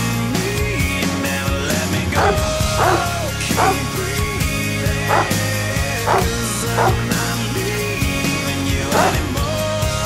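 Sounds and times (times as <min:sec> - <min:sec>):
background music: 0:00.0 - 0:10.0
large dog barking: 0:02.1 - 0:07.5, 0:08.8 - 0:09.4.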